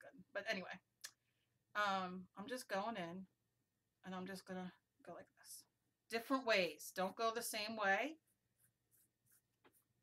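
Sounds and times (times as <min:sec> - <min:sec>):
paintbrush scratching on paper: 0:08.2 - 0:10.0.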